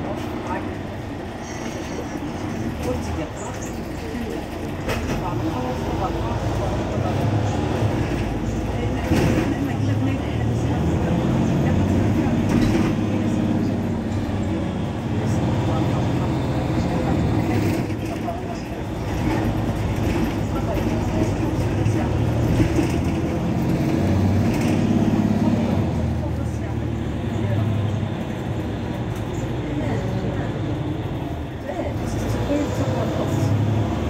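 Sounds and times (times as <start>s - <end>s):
bus diesel engine idling: 0.0s - 34.0s.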